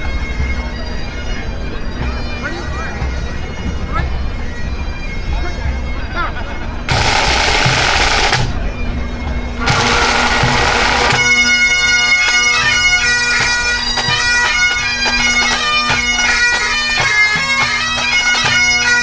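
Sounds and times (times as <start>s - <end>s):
bagpipe drones: 0.0s - 19.0s
drum corps playing: 6.9s - 8.6s, 9.6s - 11.7s
snare drum roll: 6.9s - 8.6s, 9.7s - 11.3s
bagpipe chanters playing tune: 6.9s - 19.0s.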